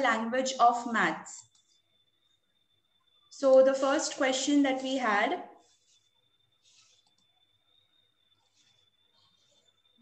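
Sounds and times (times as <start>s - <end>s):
faint high whine: 0.0s - 10.0s
computer mouse clicks: 6.9s - 7.4s.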